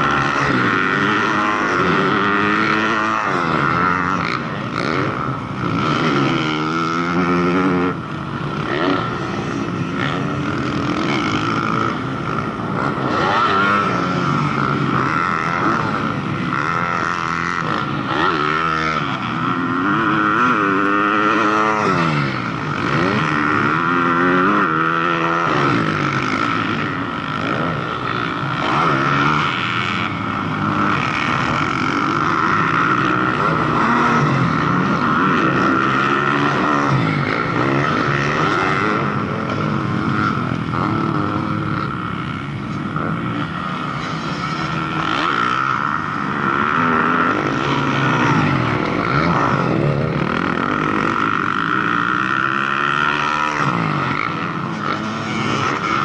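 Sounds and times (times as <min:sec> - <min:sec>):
dirt bikes revving: 0:00.0 - 0:56.0.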